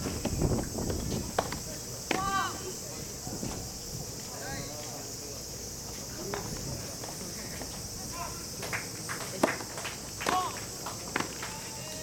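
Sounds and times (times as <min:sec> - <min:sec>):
cicadas droning: 0:00.0 - 0:12.0
distant shouts: 0:02.1 - 0:02.8, 0:08.0 - 0:08.6, 0:10.2 - 0:12.0.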